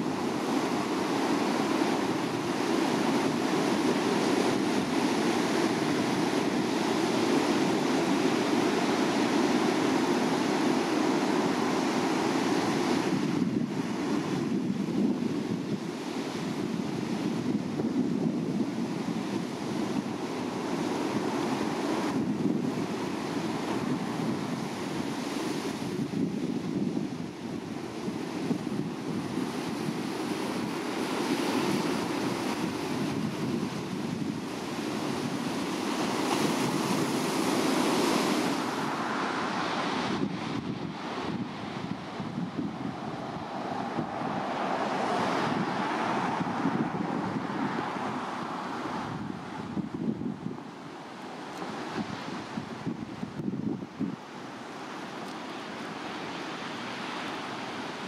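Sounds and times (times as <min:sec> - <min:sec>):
ocean surf breaking on rocks: 0:00.0 - 0:58.0.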